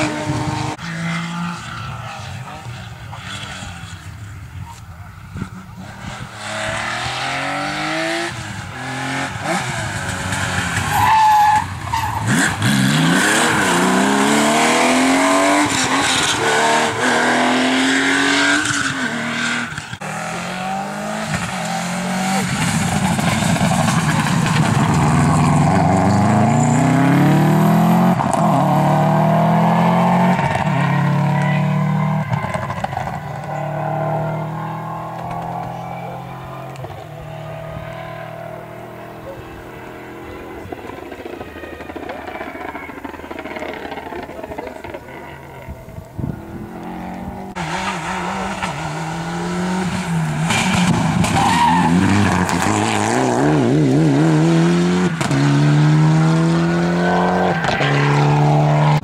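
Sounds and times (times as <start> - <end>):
rally cars accelerating past: 46.4 - 59.0.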